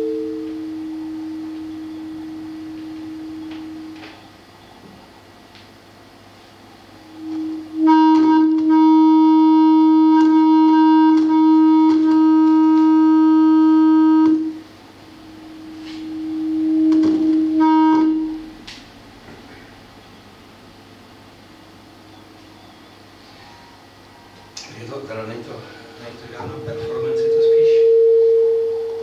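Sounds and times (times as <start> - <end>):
acoustic feedback tone: 0.0 - 29.0
low room hum: 0.0 - 29.0.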